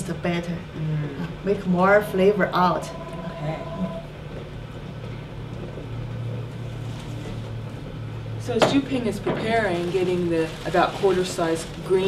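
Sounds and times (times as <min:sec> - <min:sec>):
steady low hum: 0:00.1 - 0:08.4.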